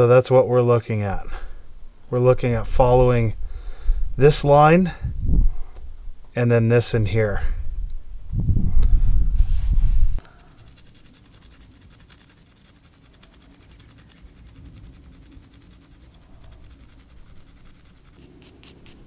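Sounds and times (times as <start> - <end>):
low rumble: 1.6 - 6.3, 6.9 - 10.2
stone being scratched by hand: 10.2 - 19.0.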